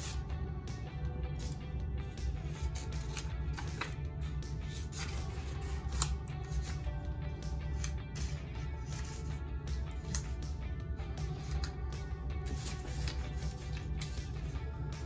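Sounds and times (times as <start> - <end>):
scissors snipping paper: 0.0 - 0.2, 1.4 - 1.6, 2.4 - 6.9, 7.6 - 9.4, 10.0 - 10.5, 11.2 - 11.8, 12.4 - 14.6
background music: 0.0 - 15.0
paper rustling: 7.7 - 9.3, 12.5 - 14.6.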